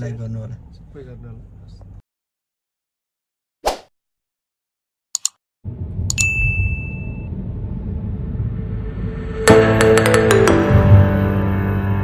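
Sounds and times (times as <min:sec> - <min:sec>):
mouse clicks: 0:05.2 - 0:05.4
low steady rumble: 0:05.7 - 0:09.5
bright bell ding: 0:06.1 - 0:07.3.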